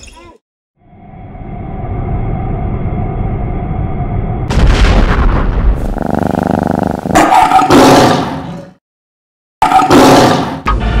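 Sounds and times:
rumbling blast and whoosh: 0:04.4 - 0:06.0
big cat roaring: 0:05.8 - 0:08.5.

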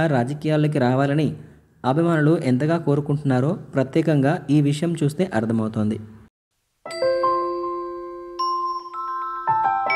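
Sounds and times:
bell-like chime jingle: 0:06.9 - 0:09.9.

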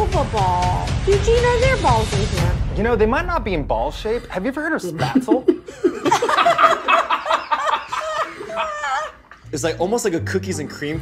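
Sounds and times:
group of people laughing: 0:04.9 - 0:09.4.

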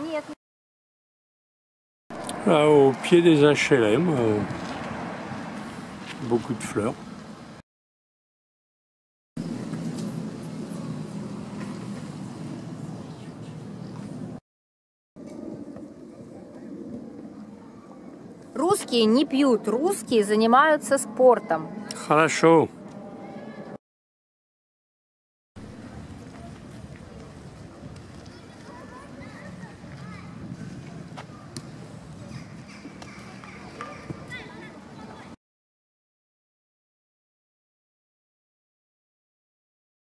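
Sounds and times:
low outdoor street rumble: 0:02.1 - 0:07.6, 0:09.4 - 0:14.4, 0:15.2 - 0:23.8, 0:25.6 - 0:35.4
birds chirping: 0:31.3 - 0:35.3.

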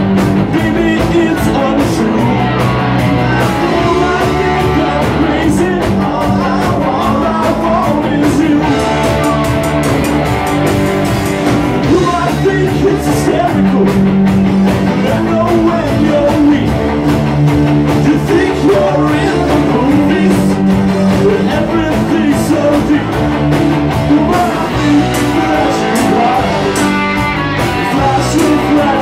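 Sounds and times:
live rock band playing: 0:00.0 - 0:29.0
person singing: 0:00.4 - 0:10.7, 0:11.8 - 0:14.1, 0:14.9 - 0:16.8, 0:18.0 - 0:23.2, 0:24.0 - 0:29.0.

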